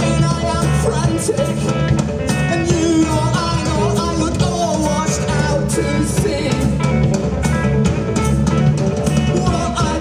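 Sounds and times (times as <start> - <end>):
drum kit beat: 0.0 - 10.0
electric guitar: 0.0 - 10.0.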